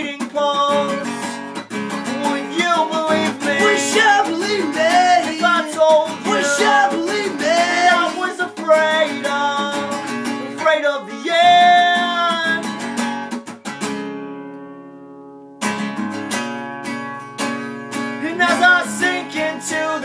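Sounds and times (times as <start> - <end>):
men singing: 0.0 - 1.4, 2.0 - 12.7, 18.2 - 20.0
acoustic guitar strumming: 0.0 - 20.0.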